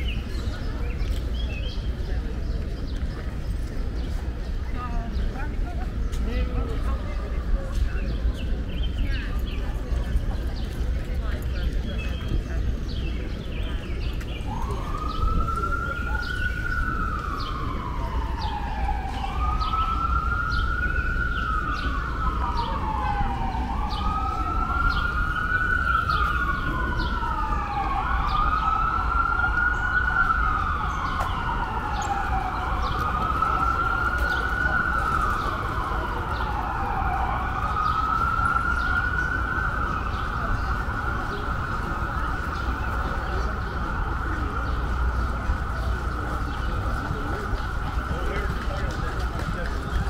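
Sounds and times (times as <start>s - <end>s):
emergency siren wailing: 13.4s - 50.0s.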